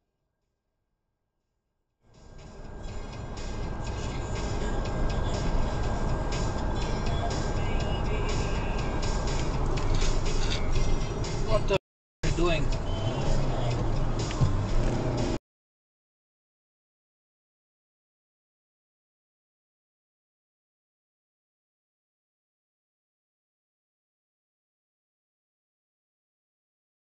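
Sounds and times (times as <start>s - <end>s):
music: 2.0s - 15.4s
car road and engine noise: 2.1s - 15.4s
voices: 10.0s - 14.5s.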